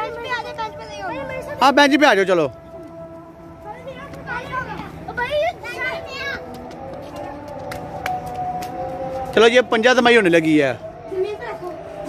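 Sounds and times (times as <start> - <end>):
children calling out and chattering: 0.0 - 9.4, 10.5 - 12.0.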